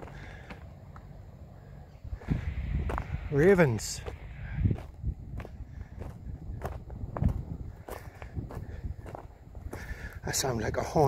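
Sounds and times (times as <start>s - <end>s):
footsteps on dry grass: 2.1s - 10.3s.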